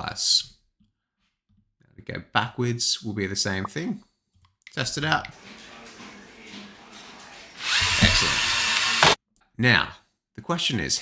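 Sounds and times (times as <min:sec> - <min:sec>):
toy robot motors whirring: 0:07.6 - 0:09.2.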